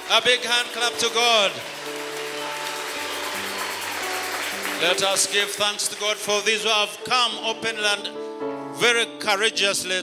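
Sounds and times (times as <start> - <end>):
congregation clapping: 0.0 - 7.4
held instrumental chords: 0.0 - 9.2.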